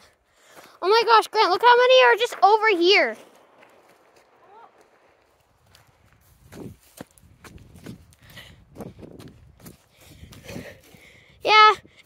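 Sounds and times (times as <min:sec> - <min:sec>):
footsteps on dirt and gravel: 0:00.0 - 0:11.1.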